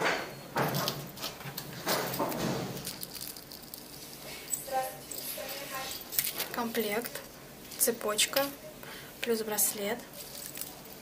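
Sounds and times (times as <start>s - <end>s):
packaging rustling: 1.2s - 4.5s, 10.1s - 11.0s.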